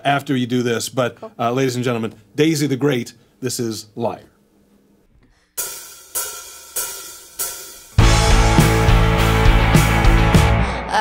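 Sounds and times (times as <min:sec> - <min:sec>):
full band playing: 0:08.0 - 0:10.5.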